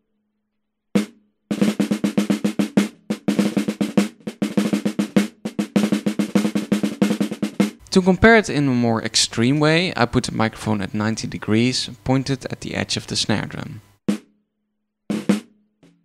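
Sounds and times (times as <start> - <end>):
dampened snare drum hits and rolls: 1.0 - 7.8, 15.1 - 16.0.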